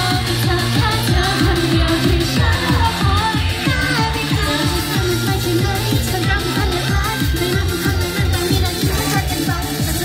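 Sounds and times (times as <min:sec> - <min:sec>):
pop song over loudspeakers: 0:00.0 - 0:10.0
women singing: 0:00.0 - 0:10.0.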